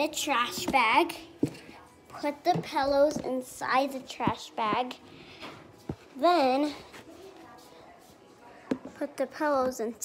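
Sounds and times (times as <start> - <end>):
child speaking: 0.0 - 1.3, 2.2 - 5.0, 9.0 - 10.0.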